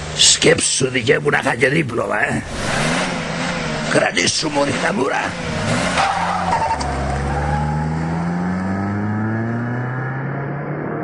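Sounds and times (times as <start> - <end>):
car engine accelerating: 0.0 - 11.0
tyre skid: 2.5 - 8.8.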